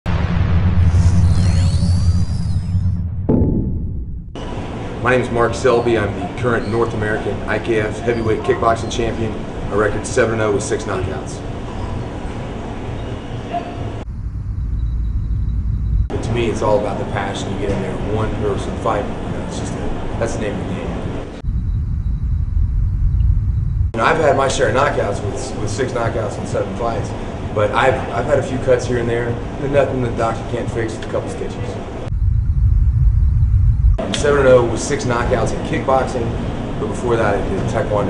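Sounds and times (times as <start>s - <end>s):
deep rumble: 0.0s - 5.5s, 13.9s - 28.4s, 31.7s - 38.0s.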